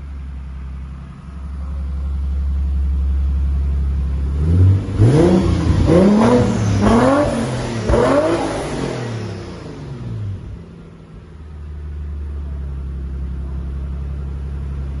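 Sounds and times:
car engine idling: 0.0s - 15.0s
car engine revving: 1.4s - 12.6s.

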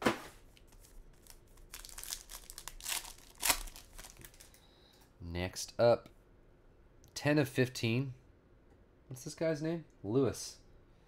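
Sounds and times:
foil wrapper crinkling: 0.6s - 4.6s.

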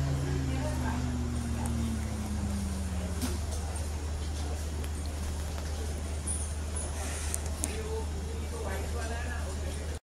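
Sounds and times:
engine note sliding down in pitch: 0.0s - 4.1s
low engine drone: 0.0s - 9.9s.

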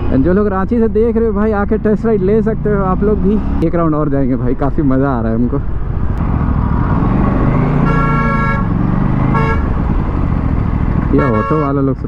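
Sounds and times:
motorcycle engine running: 5.7s - 11.6s
vehicle horn honking: 7.7s - 9.8s, 11.1s - 11.9s.

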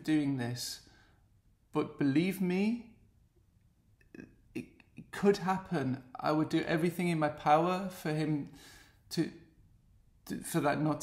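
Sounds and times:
man speaking: 0.0s - 0.9s, 1.7s - 3.0s, 4.2s - 9.5s, 10.2s - 11.0s.

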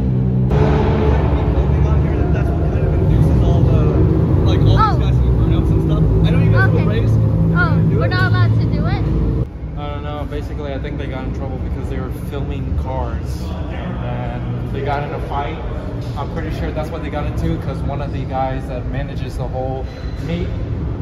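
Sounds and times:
car engine low rumble: 0.0s - 21.0s.

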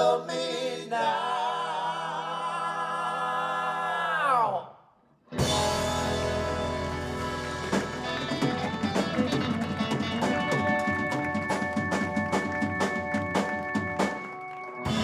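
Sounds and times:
men singing a cappella chord: 0.0s - 4.2s
rock band playing: 5.3s - 15.0s
drum and cymbal hits: 5.4s - 15.0s.

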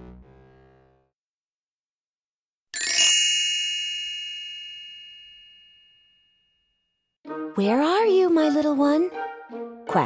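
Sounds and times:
bright chime ringing: 2.8s - 6.5s.

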